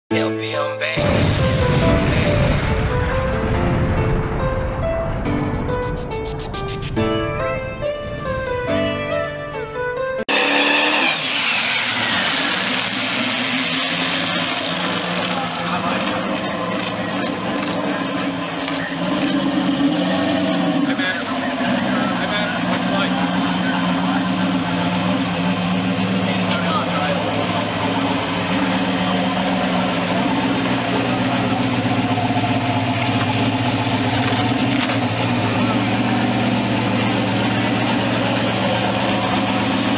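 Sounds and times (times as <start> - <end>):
car engine idling: 11.0 - 39.9.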